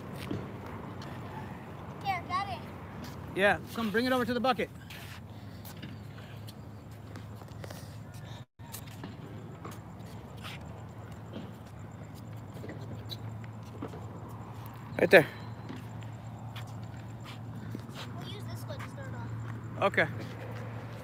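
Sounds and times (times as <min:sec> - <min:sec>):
knocks and steps on court: 0:00.1 - 0:01.2, 0:05.0 - 0:14.8.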